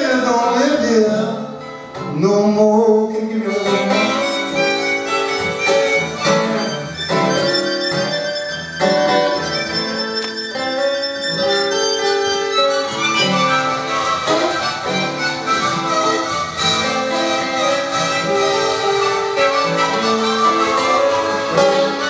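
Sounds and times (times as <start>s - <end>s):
acoustic guitar accompaniment: 0.0s - 22.0s
blues harmonica solo: 3.2s - 22.0s.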